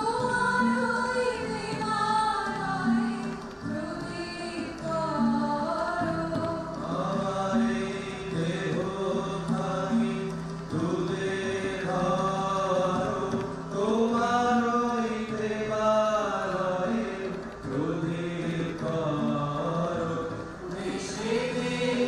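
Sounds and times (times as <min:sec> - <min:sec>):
choir singing: 0:00.0 - 0:22.0
guitars: 0:00.0 - 0:22.0.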